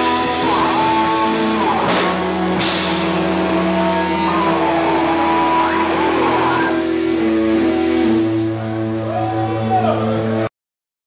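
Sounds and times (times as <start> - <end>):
live rock band: 0.0 - 10.5
cymbal crash: 1.8 - 8.5.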